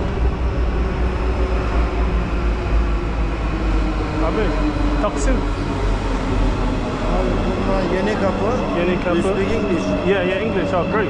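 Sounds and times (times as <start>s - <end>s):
train rumbling: 0.0s - 11.0s
crowd voices: 6.8s - 11.0s.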